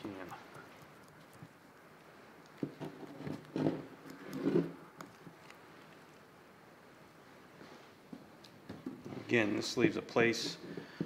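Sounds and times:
knife clicks and wet scrapes: 0.0 - 6.3
low room noise: 0.0 - 11.0.

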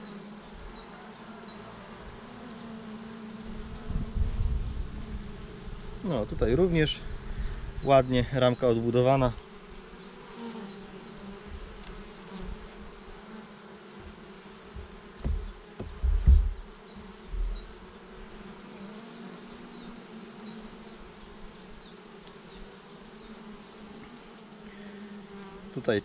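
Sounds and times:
honeybees buzzing: 0.0 - 26.0
dull thumps in wooden hive box: 11.2 - 13.2, 13.9 - 18.3.

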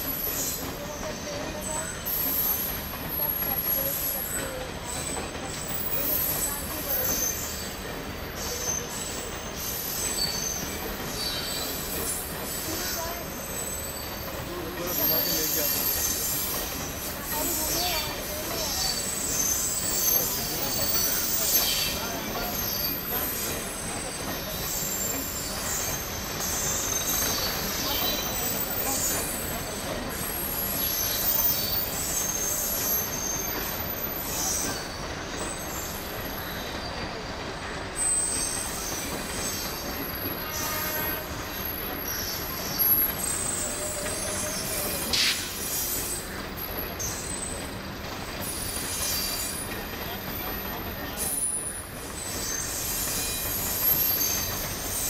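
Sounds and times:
coaches rumbling over rails: 0.0 - 55.0
train wheels squealing on rails: 0.0 - 55.0.

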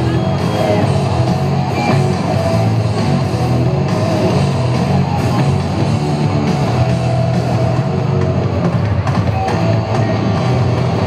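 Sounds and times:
rock music over sound system: 0.0 - 11.0.

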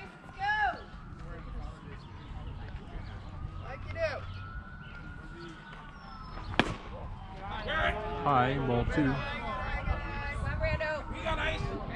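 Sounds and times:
baseball bat crack: 6.4 - 7.0.

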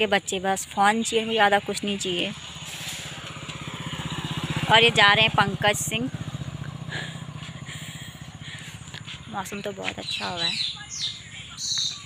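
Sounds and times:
motorcycle engine riding away: 0.0 - 12.0.

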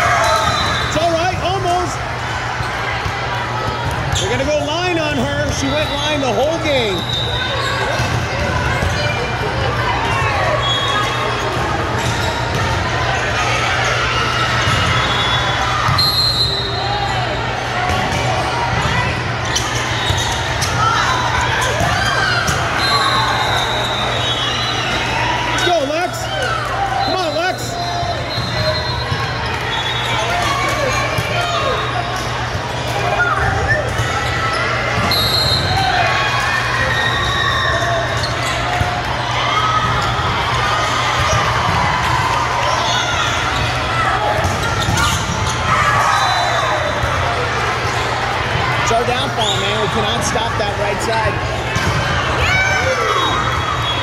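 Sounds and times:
many overlapping voices: 0.0 - 54.0
volleyballs being hit and bouncing: 17.7 - 22.8, 38.0 - 46.0.

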